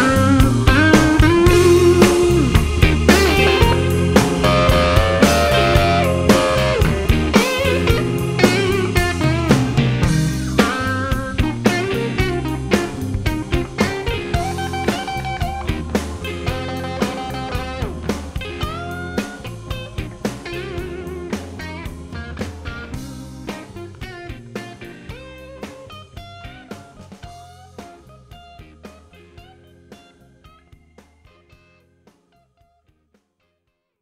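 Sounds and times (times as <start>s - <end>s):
blues band playing: 0.0s - 31.8s
lead guitar with bent notes: 0.0s - 31.8s.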